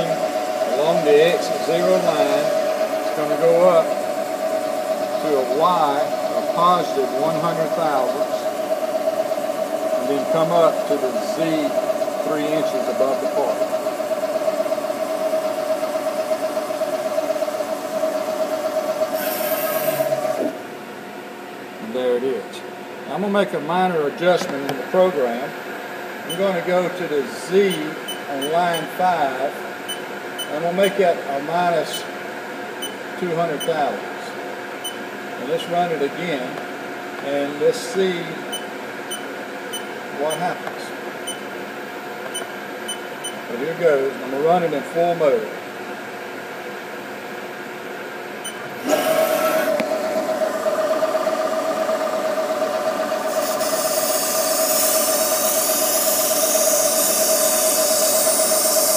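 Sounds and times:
milling machine spindle whine: 0.0 - 20.7, 24.4 - 32.2, 48.4 - 58.9.

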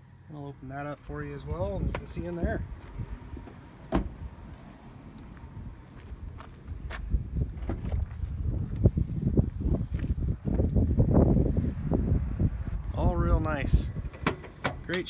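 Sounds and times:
footsteps on dirt and gravel: 2.2 - 3.6, 4.5 - 10.7
car cargo door opening: 3.4 - 4.3, 7.5 - 8.2.

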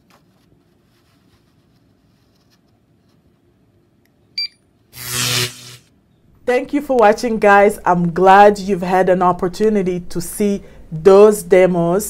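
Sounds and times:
barcode scanner beep: 4.4 - 4.6
rough noise: 5.0 - 5.9.

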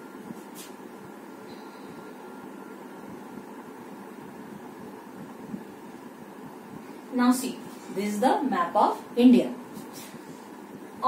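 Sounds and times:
low hum: 0.0 - 8.7.

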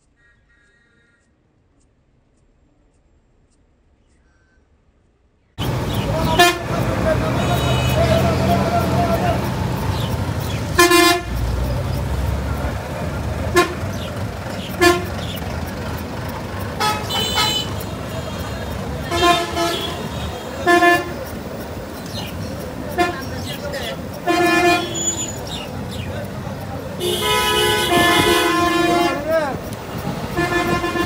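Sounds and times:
busy street traffic: 1.2 - 31.0
background voices: 5.6 - 31.0
vehicle horns honking: 5.6 - 31.0.

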